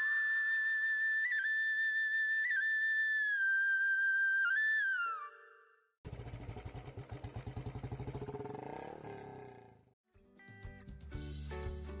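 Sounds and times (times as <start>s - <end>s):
motorcycle engine running: 6.1s - 9.8s.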